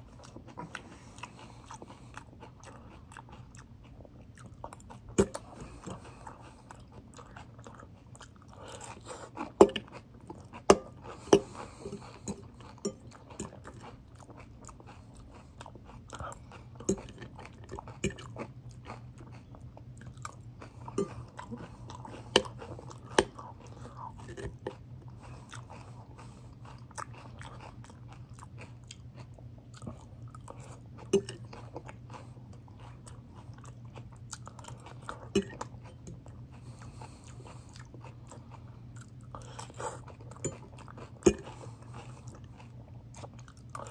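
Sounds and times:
person chewing crunchy salad: 0:00.0 - 0:43.9.

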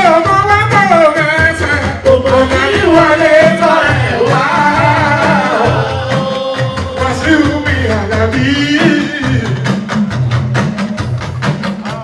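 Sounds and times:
man singing into a microphone: 0:00.0 - 0:09.8
live band with drums and bass: 0:00.0 - 0:12.0.

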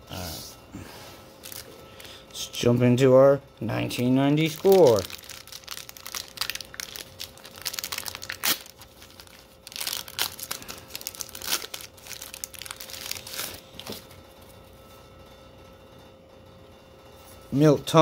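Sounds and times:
paper wrapper tearing and crinkling: 0:01.4 - 0:01.7, 0:04.4 - 0:13.9.

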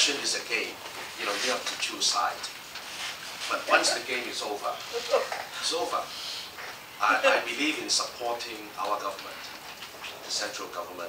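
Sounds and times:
man talking: 0:00.0 - 0:02.5, 0:03.5 - 0:06.1, 0:07.0 - 0:09.4, 0:10.0 - 0:11.0.

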